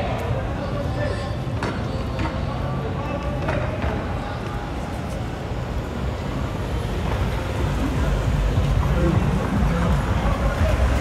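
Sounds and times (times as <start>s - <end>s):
city street noise: 0.0s - 11.0s.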